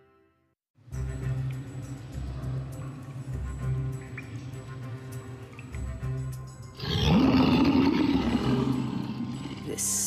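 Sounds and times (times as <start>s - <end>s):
dramatic background music: 0.9s - 10.0s
creature roaring: 6.8s - 10.0s.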